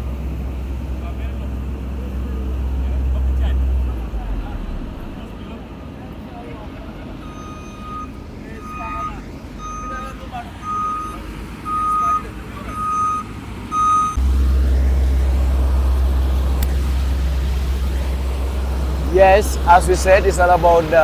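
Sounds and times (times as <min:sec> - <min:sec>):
loud low rumble: 0:00.0 - 0:07.4, 0:14.2 - 0:21.0
reversing alarm beeping: 0:07.2 - 0:14.2.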